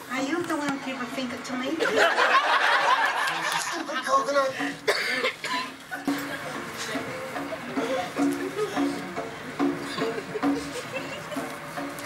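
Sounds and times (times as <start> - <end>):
people talking: 0.1 - 2.2
audience laughing: 1.8 - 12.0.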